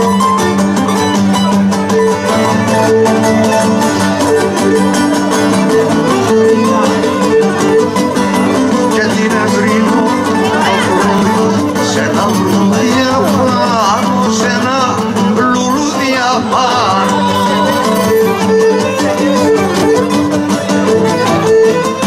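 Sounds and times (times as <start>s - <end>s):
lutes playing folk dance tune: 0.0s - 22.0s
wavering melody with vibrato: 0.0s - 22.0s.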